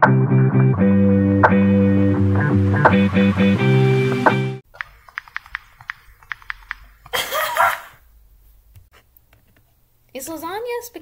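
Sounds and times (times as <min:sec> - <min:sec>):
light irregular clicks: 0:04.8 - 0:07.2.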